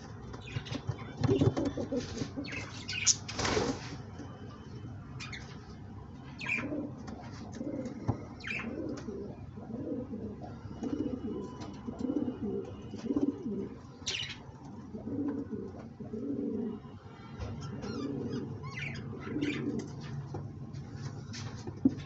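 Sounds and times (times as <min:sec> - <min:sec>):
pigeons cooing: 0:01.3 - 0:03.0, 0:06.4 - 0:16.8, 0:17.7 - 0:20.1.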